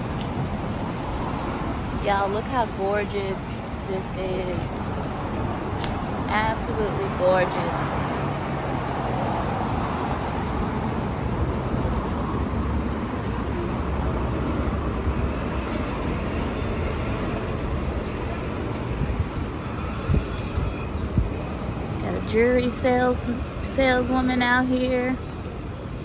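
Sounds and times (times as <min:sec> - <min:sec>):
cars passing: 0:00.0 - 0:26.0.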